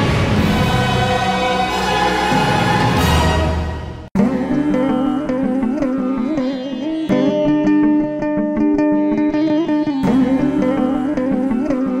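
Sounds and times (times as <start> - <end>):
orchestra playing: 0.0 - 4.1
choir singing sustained notes: 0.0 - 6.3.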